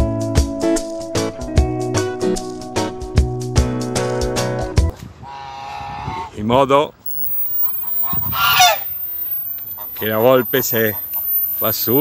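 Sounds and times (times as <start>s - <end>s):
geese honking: 7.8s - 11.2s.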